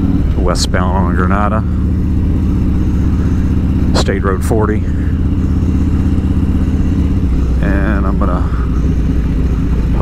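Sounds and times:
motorcycle engine throbbing: 0.0s - 10.0s.

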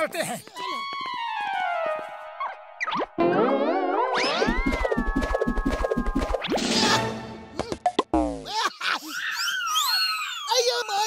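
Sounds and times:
cartoon music: 1.1s - 8.4s
falling tone: 1.2s - 7.3s
wobbling rising tone: 2.4s - 7.1s.

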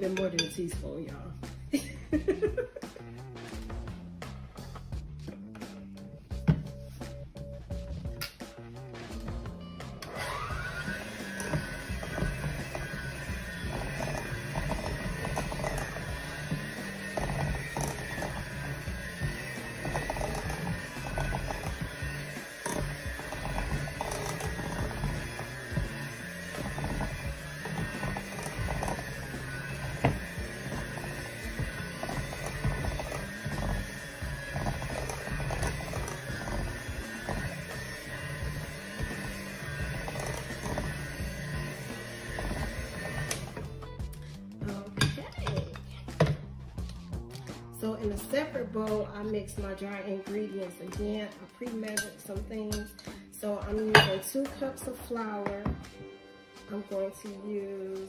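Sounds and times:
music: 0.0s - 58.0s
electric hand mixer running: 1.7s - 2.8s, 9.9s - 44.5s.

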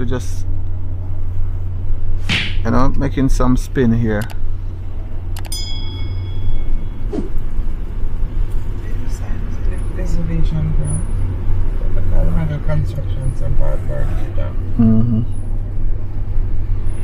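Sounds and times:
car engine and road rumble: 0.0s - 17.0s.

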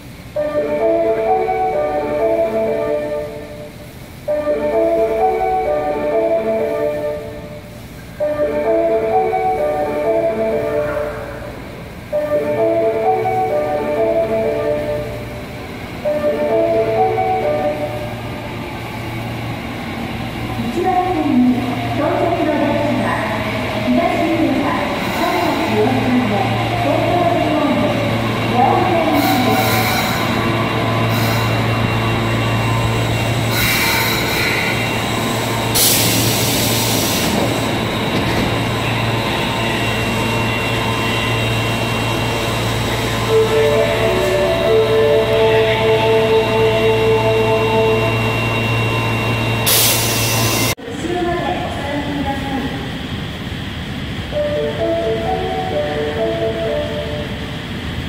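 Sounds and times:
train humming: 0.0s - 58.0s
electronic chime melody: 54.4s - 57.4s.

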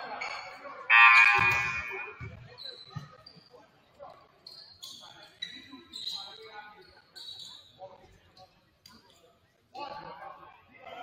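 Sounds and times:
scattered quieter voices: 0.0s - 3.2s.

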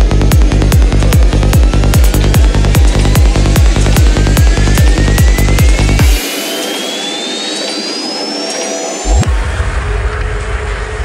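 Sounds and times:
synth sweep rising in pitch: 0.0s - 9.9s
kick drum and bassline: 0.0s - 11.0s
rushing noise: 0.2s - 11.0s.

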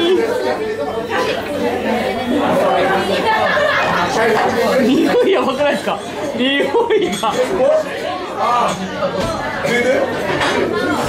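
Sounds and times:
restaurant chatter: 0.0s - 11.0s.

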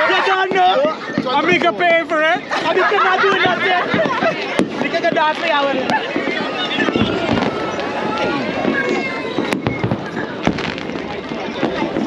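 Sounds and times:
fireworks going off: 0.0s - 12.0s
people talking: 0.0s - 12.0s.

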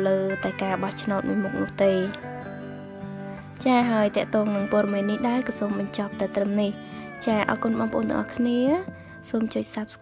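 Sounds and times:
person talking: 0.0s - 2.3s, 3.6s - 10.0s
background music: 0.0s - 10.0s.

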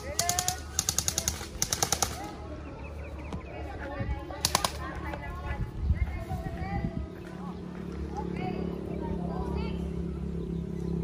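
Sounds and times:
airsoft rifles firing bursts: 0.0s - 2.4s, 4.4s - 5.0s
faint voices: 0.0s - 11.0s.

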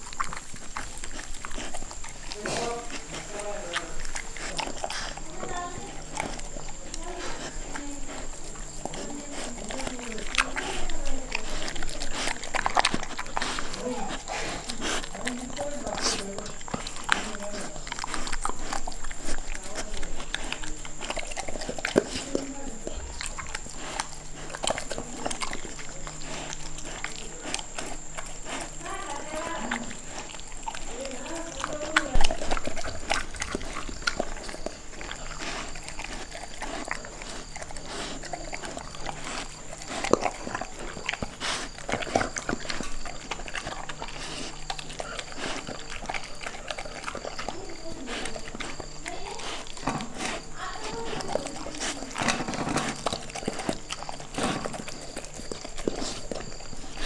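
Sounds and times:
dog chewing and licking: 0.0s - 57.0s
teeth clicking on metal bowl: 0.0s - 57.0s.

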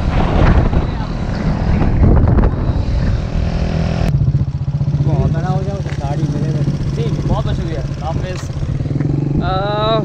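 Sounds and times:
wind rushing over microphone: 0.0s - 5.6s, 6.3s - 10.0s
motorcycle engine running: 0.0s - 10.0s.

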